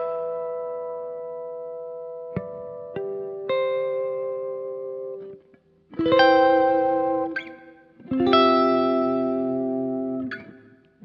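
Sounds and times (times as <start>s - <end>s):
guitar chord ringing: 0.0s - 10.8s.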